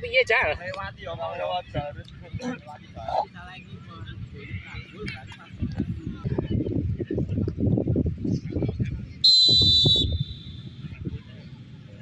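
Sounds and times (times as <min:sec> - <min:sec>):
referee's whistle blast: 0:09.2 - 0:10.7.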